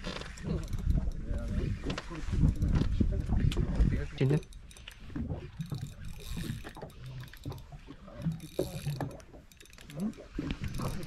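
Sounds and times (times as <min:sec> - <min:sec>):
fishing reel drag clicking: 0:00.0 - 0:02.8, 0:04.0 - 0:11.0.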